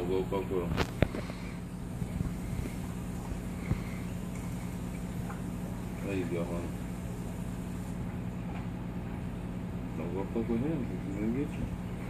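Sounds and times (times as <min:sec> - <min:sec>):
air pump humming: 0:00.0 - 0:12.0.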